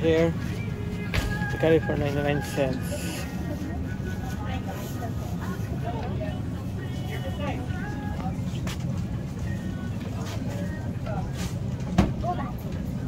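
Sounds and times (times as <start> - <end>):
indistinct shoppers' voices: 0.0 - 13.0.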